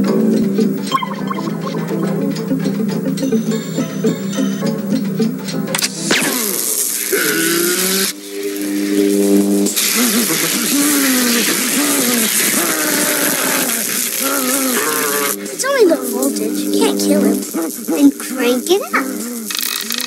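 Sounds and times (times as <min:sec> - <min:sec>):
film music: 0:00.0 - 0:19.4
electrical buzzing and crackling: 0:05.8 - 0:20.0
man's wavering shaking voice: 0:10.1 - 0:19.0.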